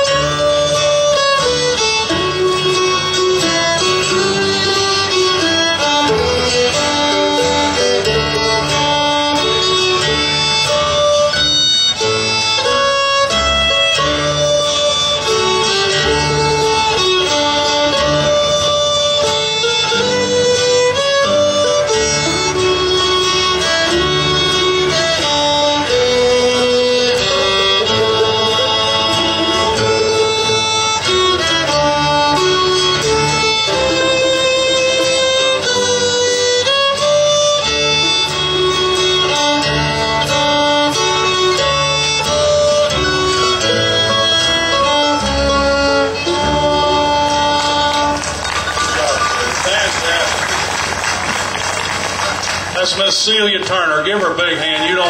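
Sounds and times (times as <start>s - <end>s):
fiddle playing lively melody: 0.0s - 55.0s
guitar accompaniment: 0.0s - 55.0s.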